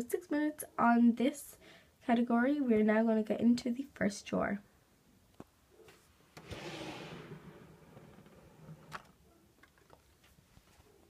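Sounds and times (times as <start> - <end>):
drawer sliding open: 6.4 - 9.2.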